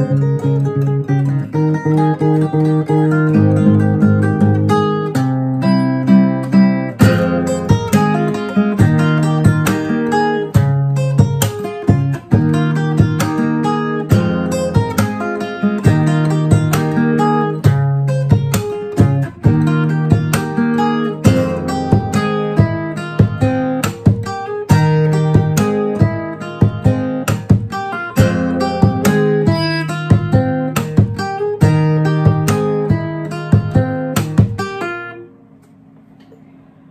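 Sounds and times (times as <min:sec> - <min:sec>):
acoustic guitar fingerpicked: 0:00.0 - 0:36.9.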